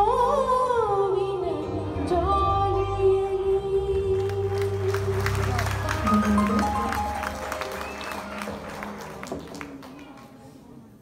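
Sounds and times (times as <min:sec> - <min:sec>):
audience clapping: 0:04.1 - 0:10.9.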